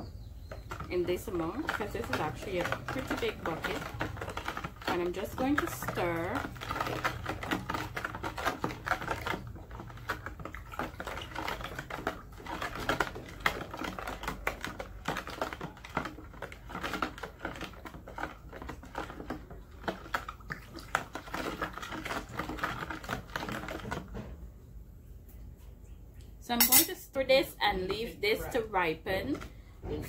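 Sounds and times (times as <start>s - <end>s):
spoon stirring in plastic bucket: 0.0s - 24.4s.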